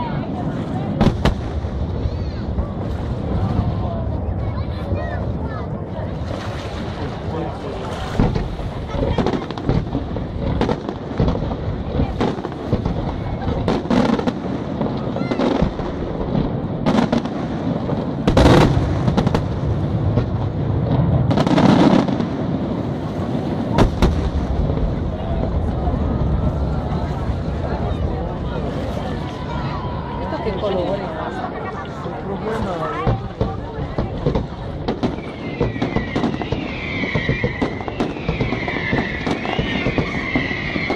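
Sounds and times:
firework shells bursting: 0:33.1 - 0:40.9.

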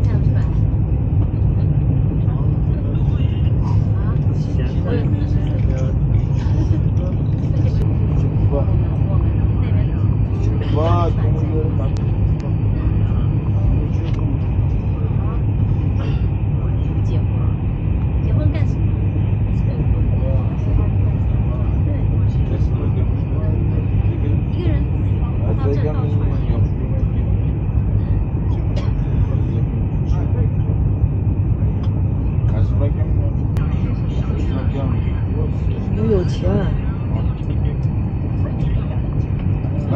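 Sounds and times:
faint passenger voices: 0:00.0 - 0:39.9
train carriage low rumble: 0:00.0 - 0:39.9.

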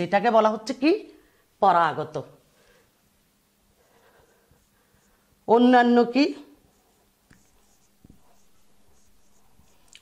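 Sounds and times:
marker writing on whiteboard: 0:06.4 - 0:10.0.

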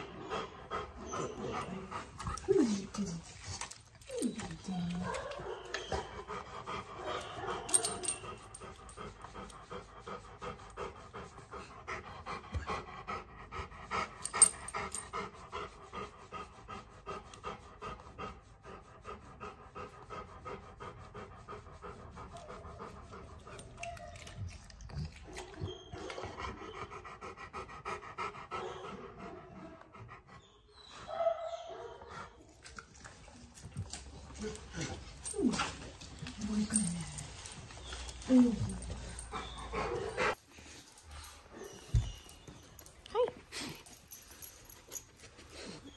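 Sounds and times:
dog panting: 0:00.0 - 0:31.2, 0:31.8 - 0:45.9.

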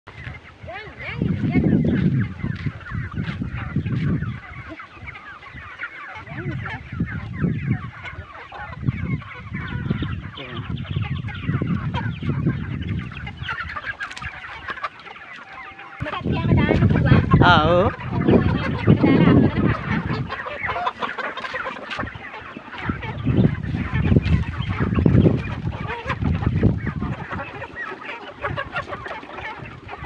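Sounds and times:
chickens clucking: 0:00.1 - 0:30.0.

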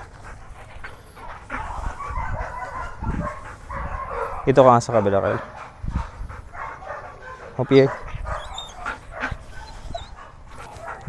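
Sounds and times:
faint outdoor sound: 0:00.0 - 0:11.0
dog barking: 0:01.5 - 0:05.6, 0:06.5 - 0:11.0.

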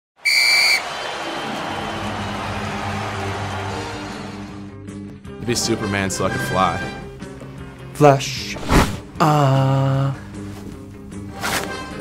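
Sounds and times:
loud whistle blast: 0:00.2 - 0:01.9.

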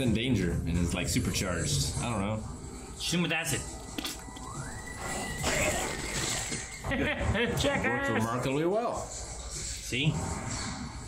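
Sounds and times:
high whining tone: 0:03.6 - 0:07.2.

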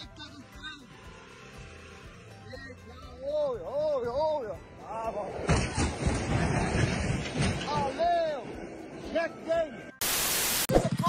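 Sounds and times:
static-like hiss burst: 0:10.0 - 0:10.9.

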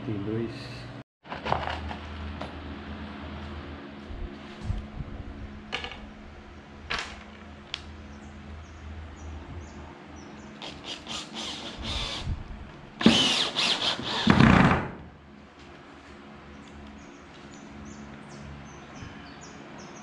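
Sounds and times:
cordless drill driving screw: 0:10.6 - 0:12.3, 0:13.0 - 0:14.4.

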